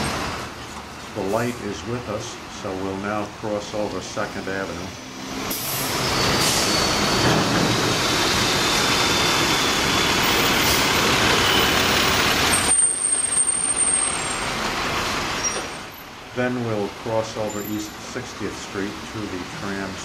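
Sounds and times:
city traffic noise: 0.0s - 20.0s
large truck passing close: 0.0s - 20.0s.

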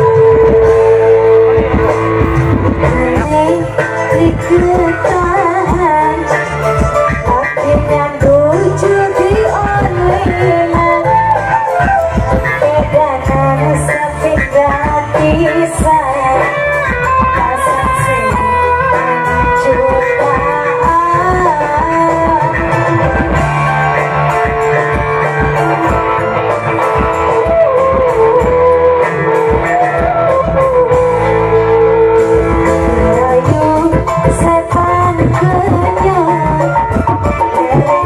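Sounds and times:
regular drumming: 0.0s - 38.0s
steady bass line: 0.0s - 38.0s
wavering lead melody: 0.0s - 38.0s.

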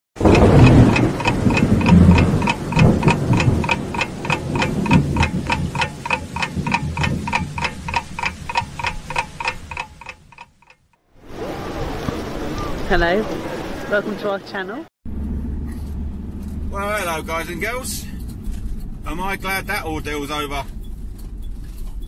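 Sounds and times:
low rumble: 0.2s - 10.5s, 15.1s - 22.0s
clock ticking: 0.2s - 11.0s.

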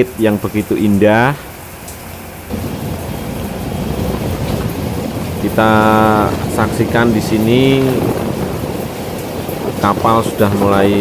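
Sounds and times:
water rushing past boat: 1.3s - 11.0s
wind rumbling on microphone: 2.5s - 11.0s.

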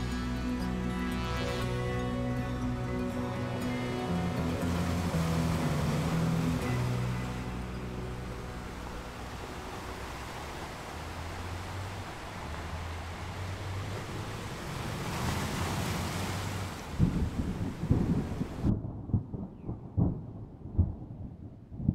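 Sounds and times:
rain and wind hiss: 1.8s - 18.7s
rolling thunder: 17.0s - 21.9s.

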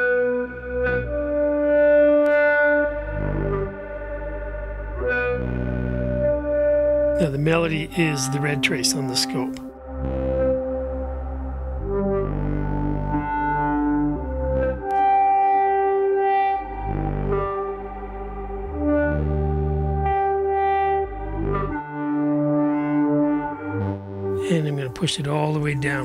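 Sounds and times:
synthesizer bass line: 0.0s - 26.0s
synthesizer melody: 0.0s - 26.0s.

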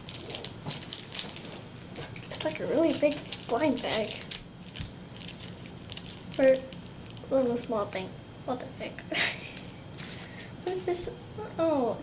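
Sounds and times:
plastic bag crinkling: 0.0s - 7.7s, 9.4s - 10.4s.

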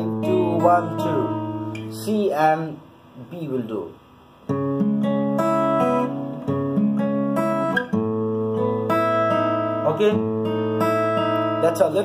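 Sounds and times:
fingerpicked acoustic guitar: 0.0s - 2.5s, 4.4s - 12.0s.

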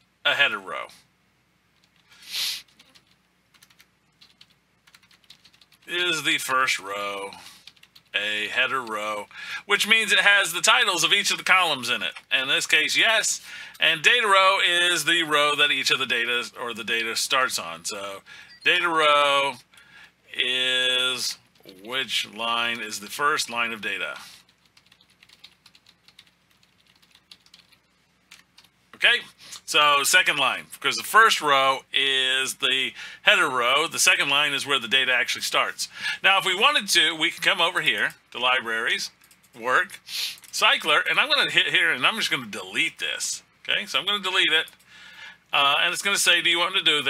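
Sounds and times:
keyboard typing: 1.8s - 5.9s, 7.6s - 8.2s, 24.4s - 28.8s, 39.1s - 39.6s
brief hiss: 2.2s - 2.7s.

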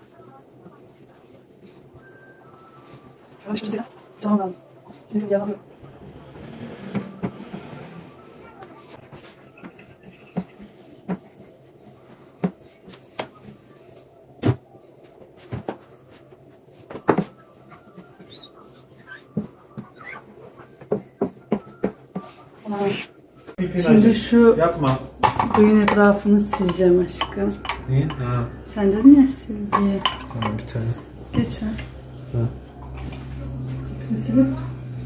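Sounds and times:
burner knobs being handled: 23.9s - 35.0s.

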